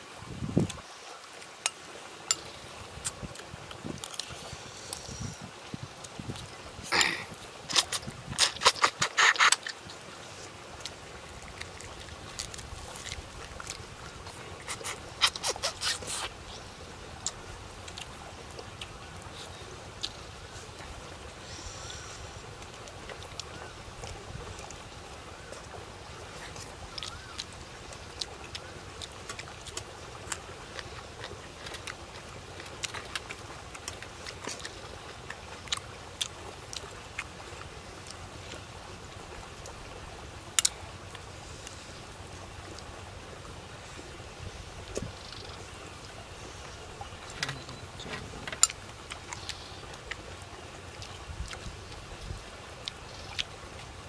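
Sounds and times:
wind on microphone: 0.1s - 0.8s, 2.8s - 8.4s, 51.2s - 52.5s
chewing clicks and smacks: 7.7s - 9.8s, 10.8s - 16.3s, 26.5s - 37.3s.

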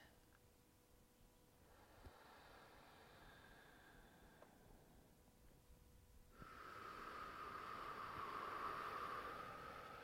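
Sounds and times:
person breathing out slowly: 1.6s - 5.2s, 6.3s - 10.0s.

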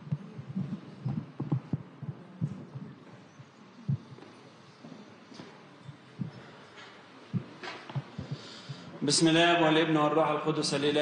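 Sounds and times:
microphone handling thumps: 0.0s - 3.2s, 7.3s - 9.0s
faint room hiss: 0.0s - 11.0s.

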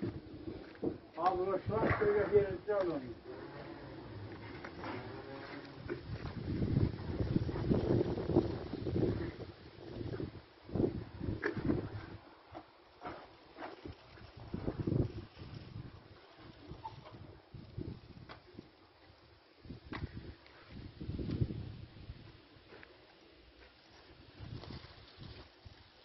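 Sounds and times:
wind buffeting microphone: 5.8s - 12.3s, 13.8s - 18.8s, 19.6s - 22.5s.

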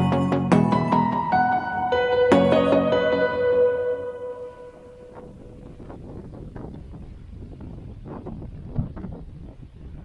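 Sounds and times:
held music note: 0.0s - 5.9s
wind rumbling on microphone: 3.6s - 10.0s.

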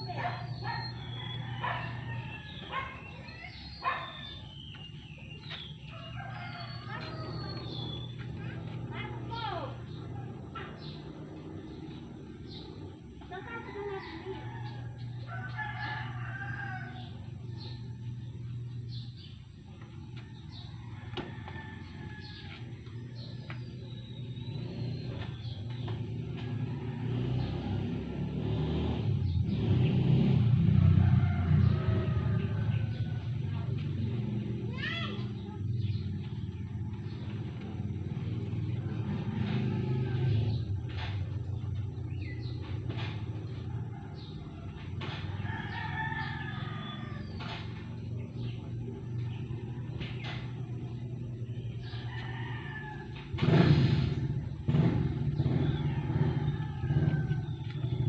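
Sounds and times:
rooster crowing: 0.8s - 3.1s, 5.8s - 7.8s, 13.4s - 18.0s, 20.4s - 23.2s, 30.5s - 33.4s, 38.1s - 41.0s, 43.5s - 47.7s, 51.6s - 58.0s.

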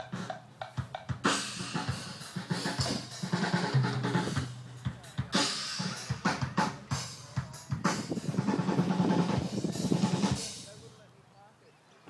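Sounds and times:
drum kit with cymbals: 0.0s - 11.0s.

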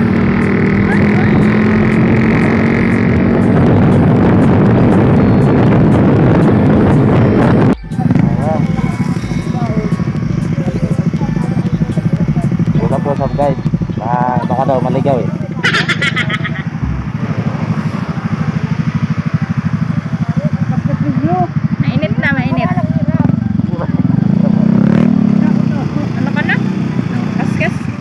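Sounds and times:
motorcycle engine idling: 0.0s - 6.6s, 7.8s - 24.7s
wind on microphone: 0.0s - 10.6s
motorcycle riding: 0.0s - 28.0s
people talking: 0.8s - 1.6s, 7.9s - 17.1s, 25.4s - 27.8s.

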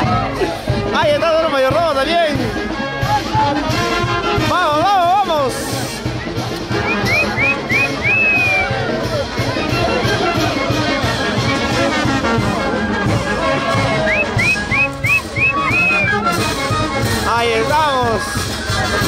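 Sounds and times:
brass band playing dance music: 0.0s - 19.0s.

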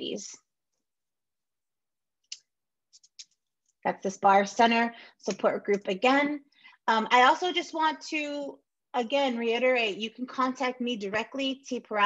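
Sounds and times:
woman speaking: 0.0s - 0.4s, 3.8s - 12.0s.

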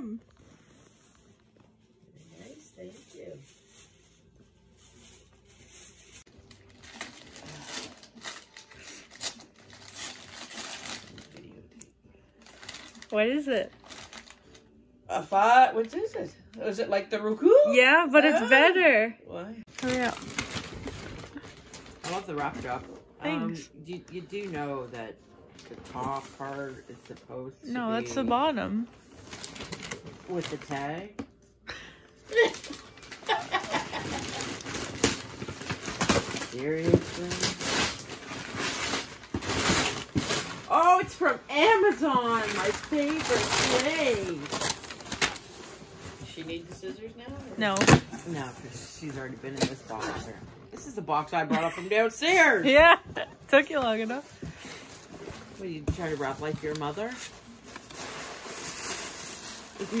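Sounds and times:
wrapping paper crinkling: 0.6s - 14.8s, 19.7s - 23.1s, 29.0s - 31.1s, 32.2s - 46.9s, 52.4s - 60.0s
person laughing: 32.3s - 34.5s.

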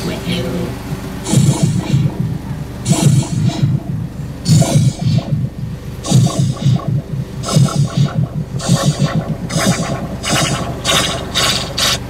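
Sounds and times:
train clattering on track: 0.0s - 12.0s
hissing noise: 0.8s - 12.0s.

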